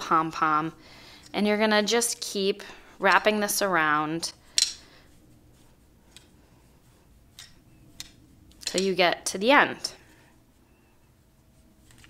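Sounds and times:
yarn wrapping: 0:01.2 - 0:12.0.

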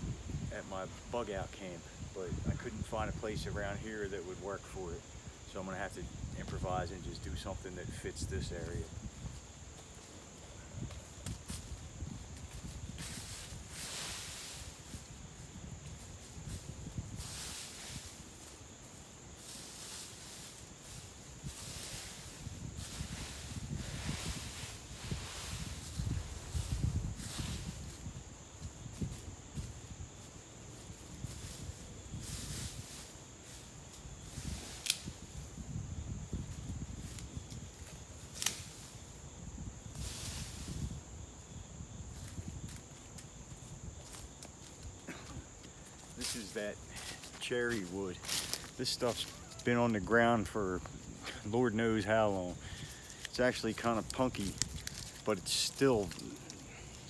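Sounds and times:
footsteps crunching dry leaves: 0:08.4 - 0:57.0.

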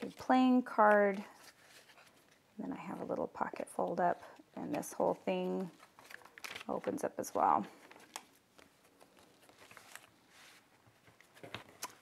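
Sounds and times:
paper rustling: 0:00.8 - 0:02.5, 0:05.7 - 0:07.0, 0:07.7 - 0:12.0.

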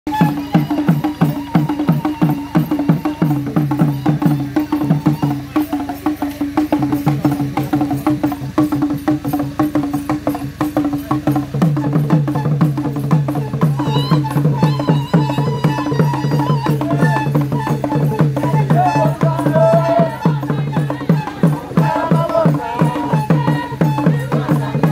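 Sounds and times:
hand drums beating fast rhythm: 0:00.1 - 0:24.9.

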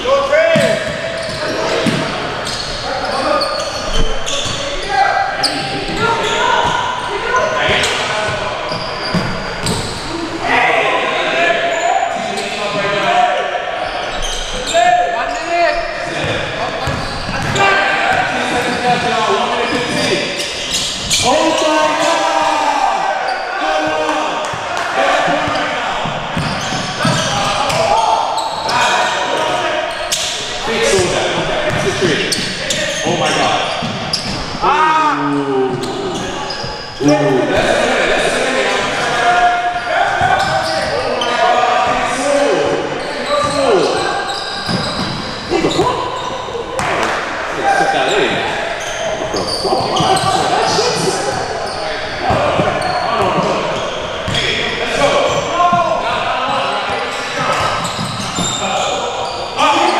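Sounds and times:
players calling out: 0:00.0 - 0:59.9.

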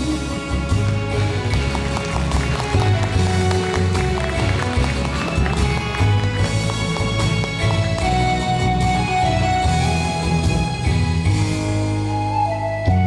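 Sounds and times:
bass line: 0:00.0 - 0:13.0
instrumental karaoke backing track: 0:00.0 - 0:13.0.

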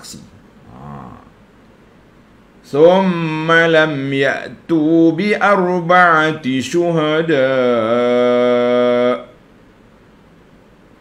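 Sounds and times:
man chanting: 0:00.0 - 0:01.3, 0:02.6 - 0:09.4
faint room hiss: 0:00.0 - 0:11.0.

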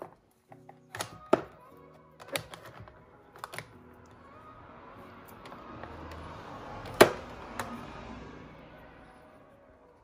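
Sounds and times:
plastic compacts clicking: 0:00.0 - 0:01.6, 0:02.2 - 0:03.7.

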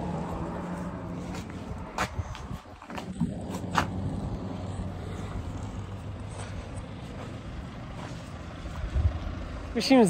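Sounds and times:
car engine on dirt track: 0:00.0 - 0:10.0.

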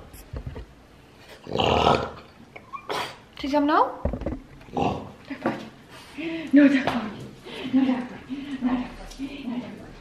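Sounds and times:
dog grumbling: 0:01.4 - 0:02.3.

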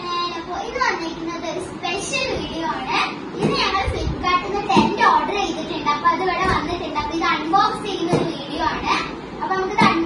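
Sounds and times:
young children chattering excitedly: 0:00.0 - 0:10.0.

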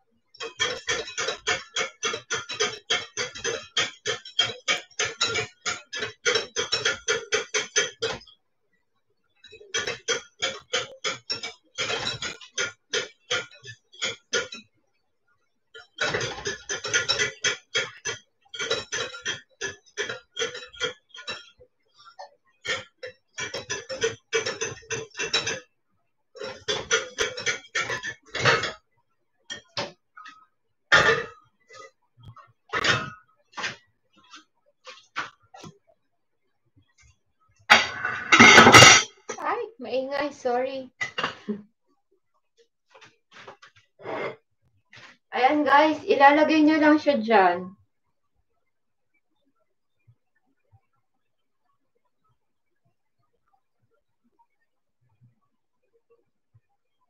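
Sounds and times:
bowl clattering against pot: 0:00.4 - 0:08.3, 0:37.7 - 0:39.4.

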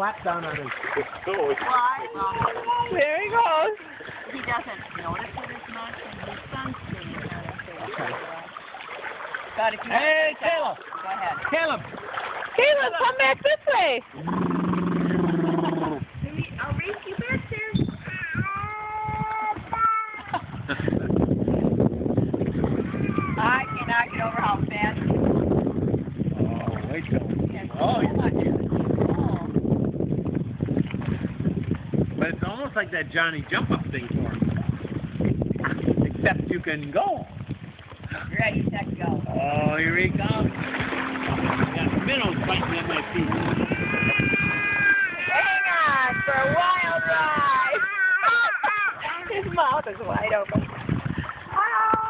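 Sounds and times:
adults laughing: 0:01.0 - 0:01.8, 0:47.8 - 0:49.5
excited adult voices: 0:01.2 - 0:08.2, 0:09.6 - 0:11.9, 0:12.6 - 0:21.1, 0:22.7 - 0:25.2, 0:26.4 - 0:29.6, 0:38.2 - 0:40.5, 0:41.6 - 0:50.6
baby calling out: 0:02.2 - 0:03.1, 0:18.0 - 0:20.2, 0:22.8 - 0:24.5, 0:43.4 - 0:49.1.

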